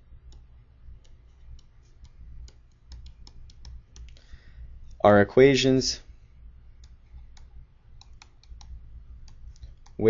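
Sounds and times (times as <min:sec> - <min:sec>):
stylus tapping tablet screen: 0:00.2 - 0:05.0, 0:06.7 - 0:10.0.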